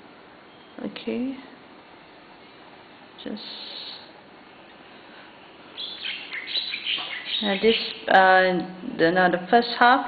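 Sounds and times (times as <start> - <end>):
small bird chirping: 5.7 - 8.1.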